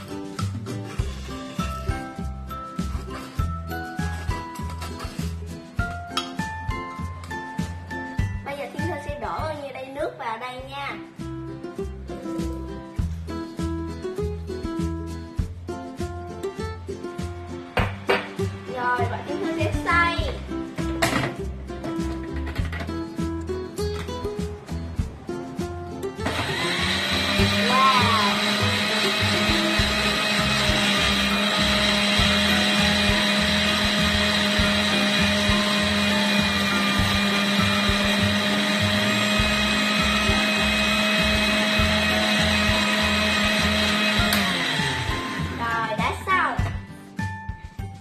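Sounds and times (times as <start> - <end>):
blender motor running: 26.2 - 45.7.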